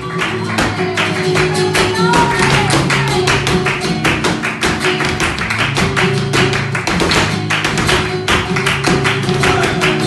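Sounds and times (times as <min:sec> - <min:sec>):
flamenco guitar playing: 0:00.0 - 0:10.0
hand-clapping: 0:00.0 - 0:10.0
heeled shoes striking wooden stage: 0:00.0 - 0:10.0.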